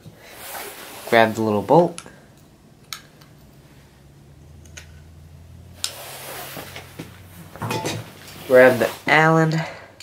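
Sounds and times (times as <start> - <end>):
faint low hum: 1.1 - 8.5
metal parts clicking and tapping: 2.0 - 3.3.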